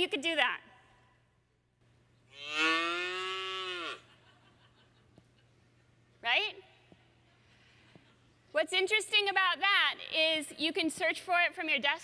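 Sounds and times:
cow moo played on phone: 0:02.3 - 0:04.0.

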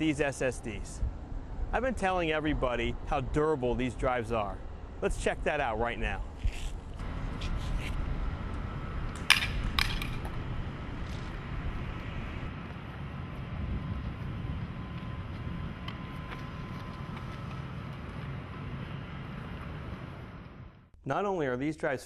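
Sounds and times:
outdoor rumble: 0:06.2 - 0:20.9.

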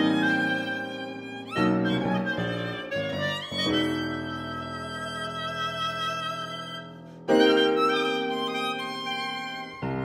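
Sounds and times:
clarinet: 0:00.0 - 0:10.0
violin: 0:00.0 - 0:10.0.

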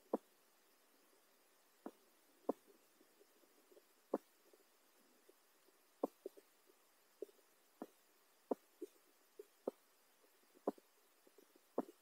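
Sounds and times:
soft underwater clicks and knocks: 0:11.4 - 0:12.0.

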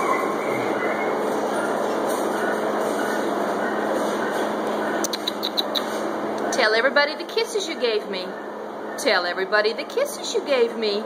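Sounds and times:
low even hum: 0:00.0 - 0:11.0
steady mechanical running noise: 0:00.0 - 0:11.0.

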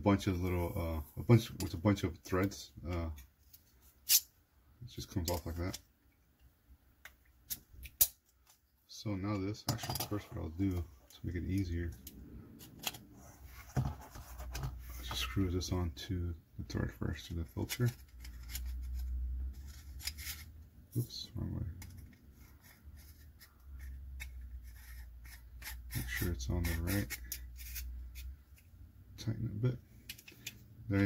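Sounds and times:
hands rubbing metal ring: 0:21.7 - 0:28.8.

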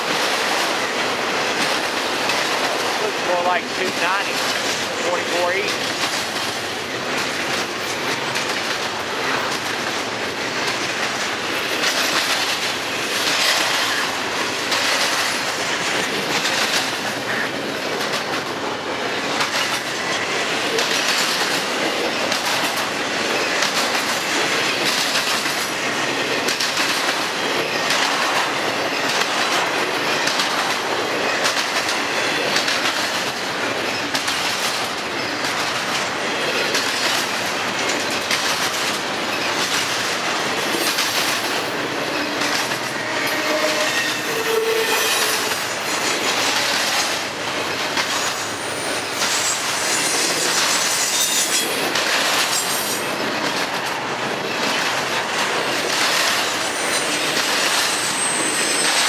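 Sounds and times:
train wheels rolling on rail: 0:00.0 - 0:59.0
high wheel squeals: 0:43.0 - 0:45.6, 0:57.9 - 0:59.0.

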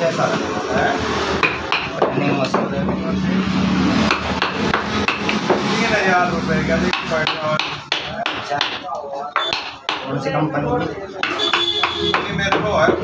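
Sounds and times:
mallet striking chisel into wood: 0:01.4 - 0:02.7, 0:04.1 - 0:05.6, 0:06.9 - 0:10.1, 0:11.2 - 0:13.0.

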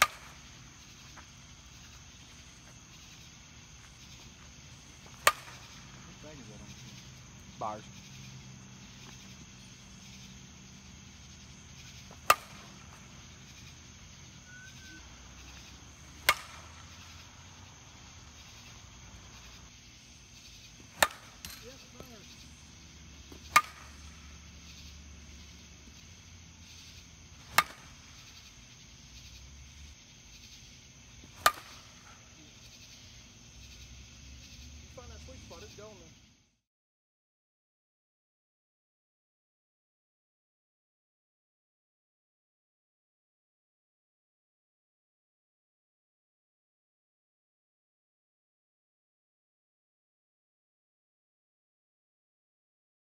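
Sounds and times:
bat hitting softball cracks: 0:00.0 - 0:10.2, 0:10.8 - 0:19.6, 0:20.7 - 0:25.1, 0:27.3 - 0:28.6, 0:31.2 - 0:32.4.

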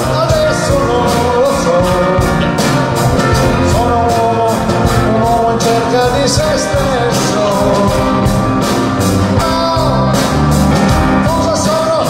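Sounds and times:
drums: 0:00.0 - 0:12.0
electric bass: 0:00.0 - 0:12.0
gliding lead melody: 0:00.0 - 0:12.0
guitars: 0:00.0 - 0:12.0
keyboards: 0:00.0 - 0:12.0.

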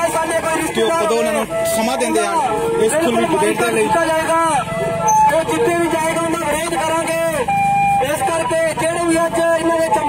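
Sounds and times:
man speaking through megaphone: 0:00.0 - 0:10.0.

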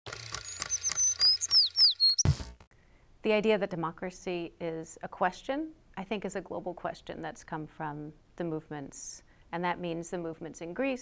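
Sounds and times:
regular clicks: 0:00.1 - 0:02.6
thin high chirps: 0:00.3 - 0:02.5.

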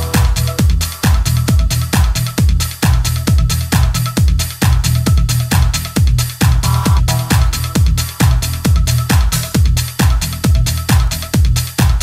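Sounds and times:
bass line: 0:00.0 - 0:12.0
four-on-the-floor kick drum: 0:00.0 - 0:12.0
hi-hats: 0:00.0 - 0:12.0
synth stabs: 0:06.6 - 0:08.7.

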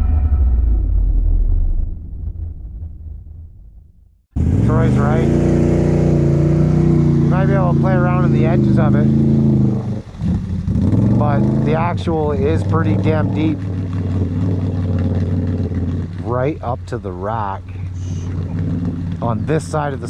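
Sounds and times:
low throbbing intro sound: 0:00.0 - 0:20.0
atv engine idling: 0:04.4 - 0:20.0
voices: 0:04.6 - 0:05.7, 0:06.7 - 0:09.2, 0:11.2 - 0:13.7, 0:16.2 - 0:20.0.

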